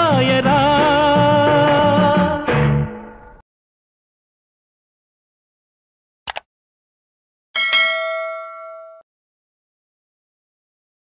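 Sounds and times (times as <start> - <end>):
notification bell chime: 7.6 - 9.0.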